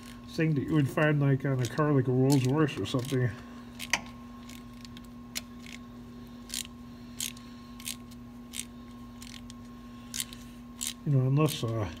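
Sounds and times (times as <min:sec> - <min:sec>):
ratchet wrench clicking: 0:06.5 - 0:09.5, 0:10.1 - 0:11.6.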